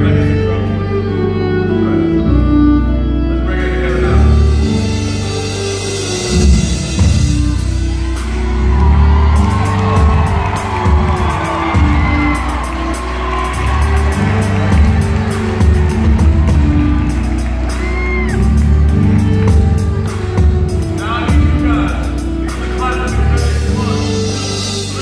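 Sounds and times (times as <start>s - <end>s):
deep bass line: 0.0s - 25.0s
keyboard: 0.0s - 25.0s
violin melody: 0.0s - 25.0s
drum kit with cymbals: 4.6s - 25.0s.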